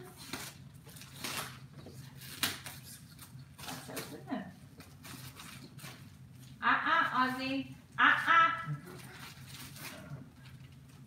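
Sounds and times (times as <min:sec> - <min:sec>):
plastic bag crinkling: 0:08.9 - 0:11.0.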